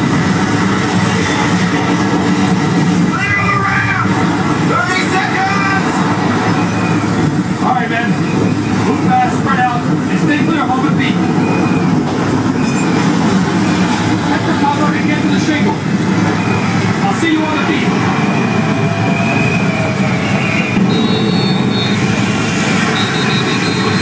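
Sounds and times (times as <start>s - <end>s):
crowd talking and calling out: 0.0s - 24.0s
long high whistles: 17.9s - 24.0s.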